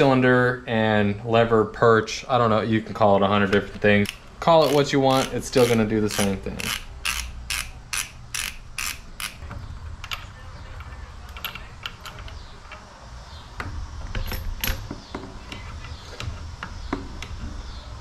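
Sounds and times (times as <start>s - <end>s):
ratcheting driver clicking: 4.0s - 9.5s.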